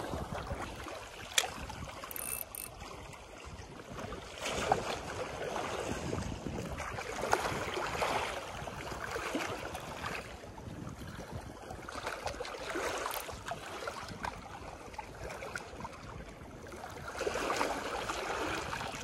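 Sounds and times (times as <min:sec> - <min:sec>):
waves lapping against rocks: 0:00.0 - 0:19.0.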